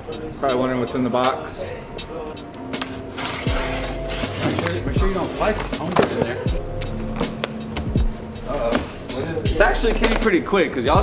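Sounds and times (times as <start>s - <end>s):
blade slicing packing tape: 2.8s - 4.4s.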